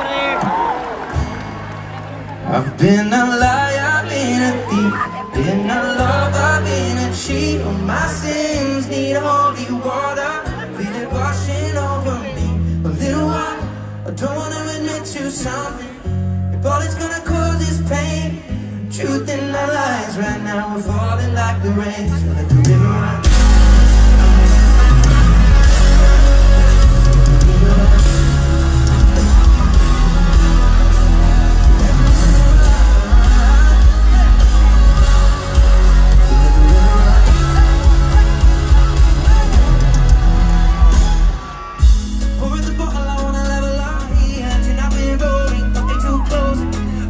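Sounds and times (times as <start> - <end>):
acoustic guitar: 0.4 - 47.0
man singing: 2.5 - 47.0
low bass notes: 21.2 - 47.0
drum kit playing a steady beat: 22.6 - 46.9.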